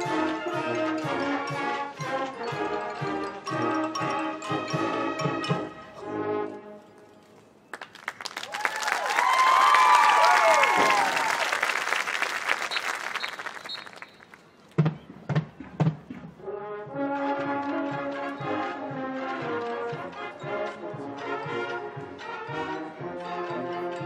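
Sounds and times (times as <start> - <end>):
marching band brass playing: 0.0 - 6.9, 15.4 - 24.0
crowd applause and cheering: 7.7 - 14.4
crowd whoops: 8.3 - 12.0
drum strokes: 14.8 - 16.4.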